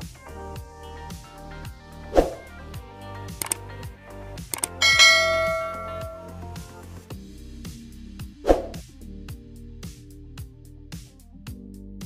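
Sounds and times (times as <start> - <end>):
background music: 0.0 - 12.0
sharp clicks: 3.4 - 3.6, 4.5 - 4.8
bell-like ding: 4.6 - 6.5.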